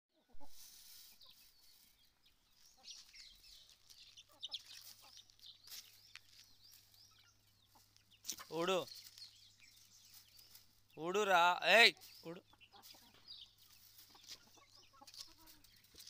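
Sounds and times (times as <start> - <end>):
chickens clucking and cheeping: 0.1 - 16.0.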